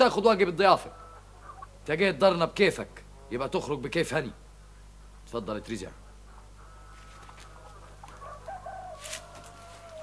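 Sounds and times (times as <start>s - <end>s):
rooster crowing: 6.6s - 10.0s
short rustle: 8.9s - 10.0s.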